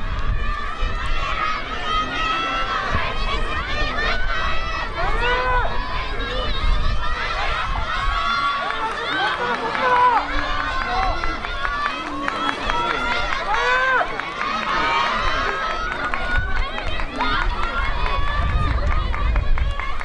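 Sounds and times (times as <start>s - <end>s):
spectators shouting: 0.0s - 20.0s.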